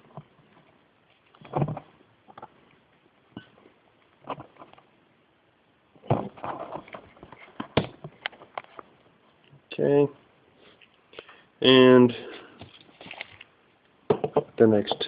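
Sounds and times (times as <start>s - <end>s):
rustling: 6.2s - 9.5s, 12.2s - 13.9s.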